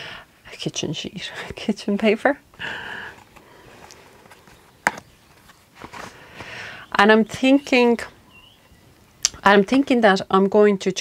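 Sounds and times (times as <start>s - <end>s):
soft paper rustle: 2.6s - 6.8s.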